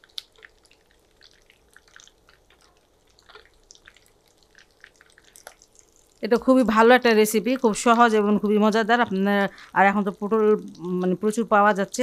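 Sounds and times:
hot oil frying crackles and pops: 0:00.0 - 0:12.0.

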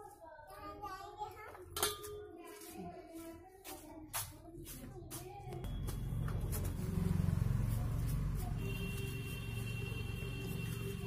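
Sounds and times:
faint background voices: 0:00.0 - 0:11.0.

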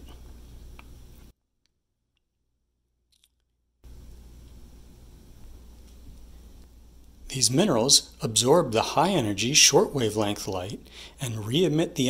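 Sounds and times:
room tone hum and hiss: 0:00.0 - 0:01.3, 0:03.8 - 0:12.0.

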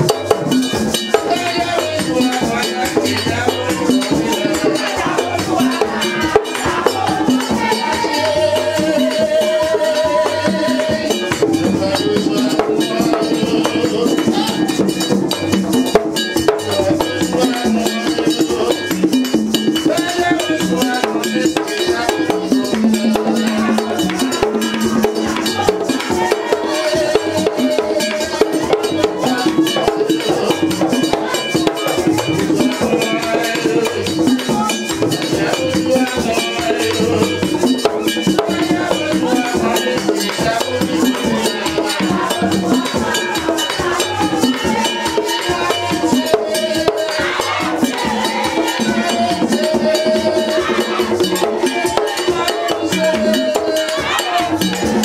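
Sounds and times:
drums playing: 0:00.0 - 0:55.0
metal bell: 0:00.0 - 0:55.0
voices singing: 0:00.0 - 0:55.0.

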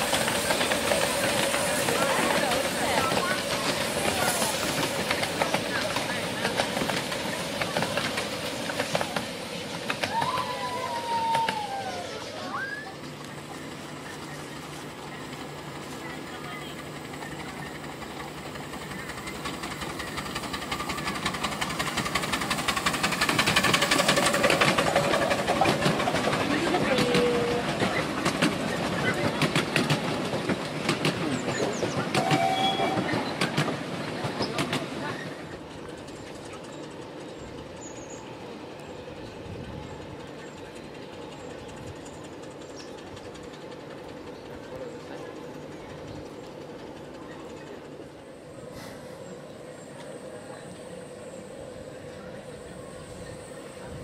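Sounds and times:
wheels clicking over rail joints: 0:00.0 - 0:11.8, 0:12.4 - 0:54.0
miniature train passing: 0:00.0 - 0:54.0.

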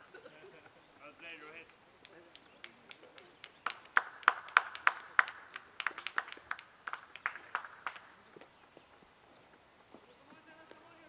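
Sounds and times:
people clapping: 0:01.6 - 0:08.3.

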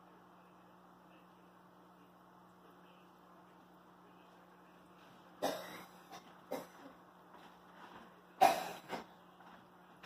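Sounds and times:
person coughing: 0:05.4 - 0:07.0, 0:08.4 - 0:09.1.

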